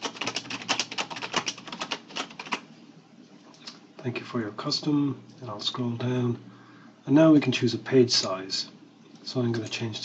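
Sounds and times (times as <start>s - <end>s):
computer keyboard typing: 0.0s - 2.6s.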